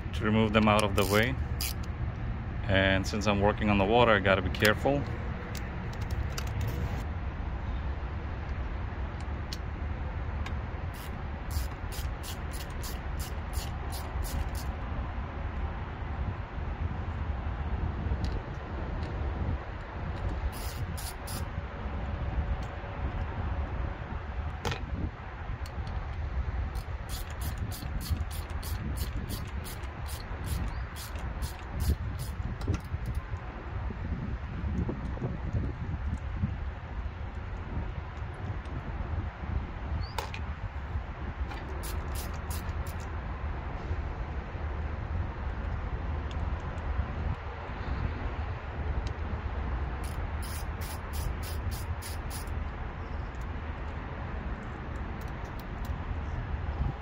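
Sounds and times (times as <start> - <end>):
socket ratchet wrench clicking: 0.6 - 2.2, 11.0 - 14.7, 20.2 - 21.5, 26.7 - 33.2, 41.5 - 43.1, 50.0 - 52.6, 54.5 - 56.0.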